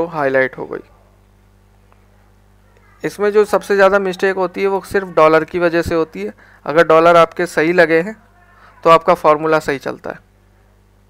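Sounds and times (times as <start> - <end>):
faint electrical hum: 0.0 - 11.0.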